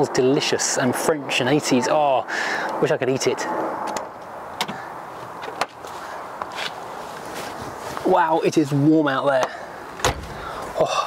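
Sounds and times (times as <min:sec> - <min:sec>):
low outdoor background: 0:00.0 - 0:11.0
scuffs and clicks of footsteps: 0:05.4 - 0:08.1.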